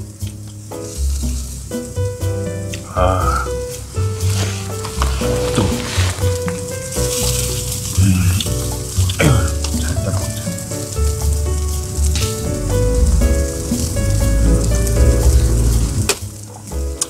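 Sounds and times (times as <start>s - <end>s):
background music with deep bass: 0.0s - 17.0s
chicken sizzling on grill: 0.0s - 17.0s.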